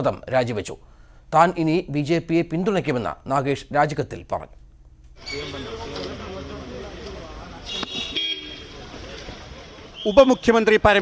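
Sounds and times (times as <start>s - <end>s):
low street background noise: 0.0s - 11.0s
vehicle horn toots: 7.7s - 8.7s.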